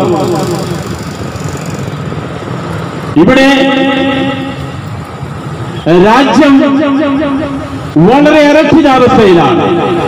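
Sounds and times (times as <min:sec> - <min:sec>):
road traffic noise: 0:00.0 - 0:10.0
man speaking into a microphone: 0:03.2 - 0:04.6, 0:05.8 - 0:10.0.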